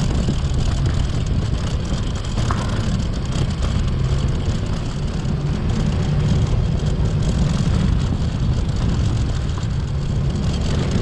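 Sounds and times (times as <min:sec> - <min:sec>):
road and wind noise: 0:00.0 - 0:11.0
vehicle engine rumble: 0:00.0 - 0:11.0.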